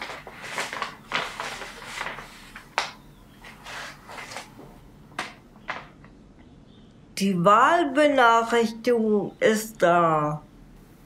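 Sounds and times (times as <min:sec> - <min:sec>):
sharp paper crackles: 0:00.0 - 0:04.5
paper rustling and crinkling: 0:00.0 - 0:04.6.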